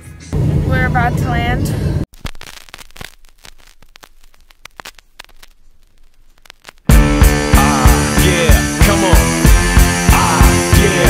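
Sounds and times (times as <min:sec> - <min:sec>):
faint crackling and clicking: 0:02.1 - 0:06.9.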